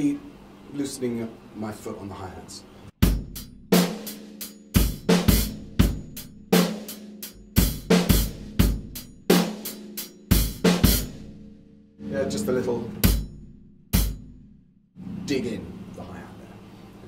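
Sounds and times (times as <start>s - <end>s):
bass drum: 3.0s - 4.1s, 4.8s - 6.8s, 7.4s - 14.6s
snare and floor tom backbeat: 3.0s - 11.6s, 12.9s - 14.4s.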